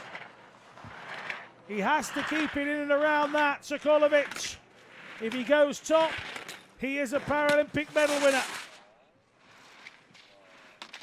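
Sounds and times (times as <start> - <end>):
ski edge scraping on snow: 0.0 - 8.8, 9.4 - 11.0.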